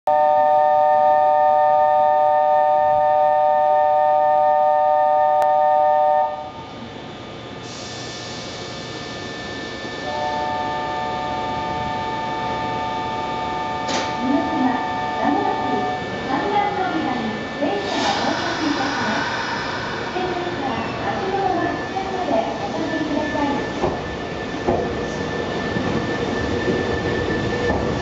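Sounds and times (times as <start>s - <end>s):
hiss: 7.6s - 8.8s, 17.7s - 21.6s
electronic departure signal chord: 8.2s - 17.6s
voices: 14.1s - 23.9s.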